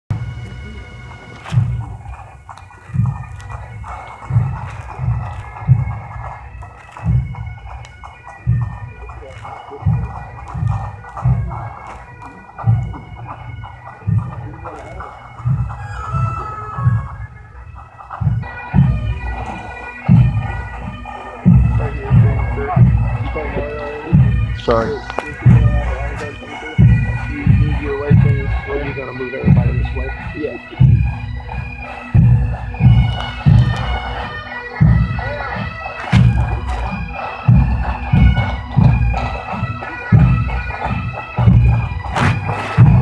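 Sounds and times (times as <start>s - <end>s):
bagpipes playing slow tune: 0.1s - 43.0s
low drum beat: 0.1s - 43.0s.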